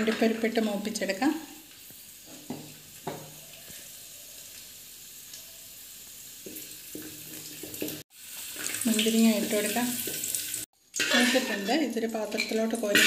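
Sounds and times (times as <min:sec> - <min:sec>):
nuts sizzling in a pan: 0:00.0 - 0:13.0.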